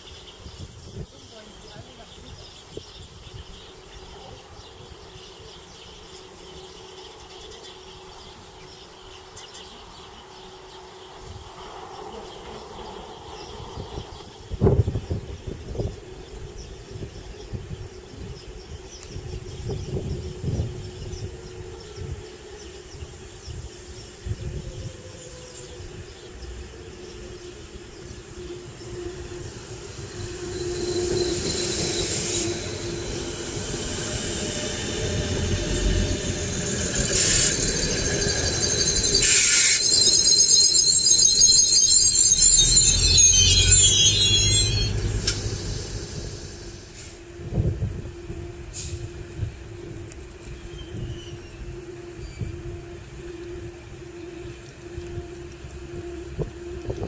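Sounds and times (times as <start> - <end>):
diesel train rolling past: 0.0 - 57.0
high-pitched brake squeal: 27.2 - 53.7.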